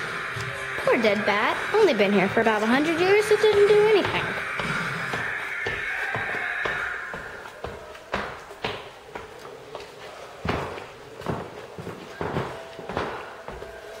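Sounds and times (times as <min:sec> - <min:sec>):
footsteps on hard floor: 0:00.0 - 0:14.0.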